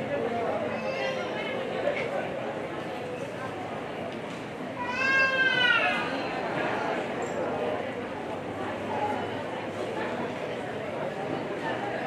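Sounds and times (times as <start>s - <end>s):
murmur of voices: 0.0s - 12.0s.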